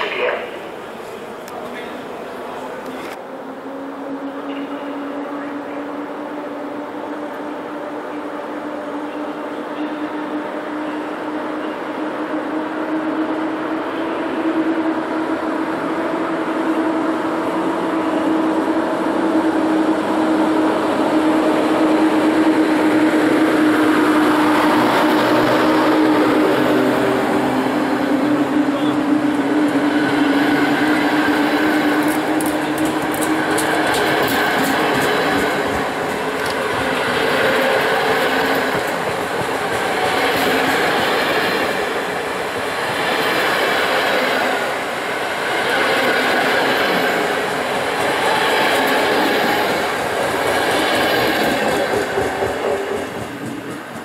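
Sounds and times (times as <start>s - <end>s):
electric locomotive humming: 0.0s - 54.0s
train wheels rumbling on rail: 0.0s - 54.0s.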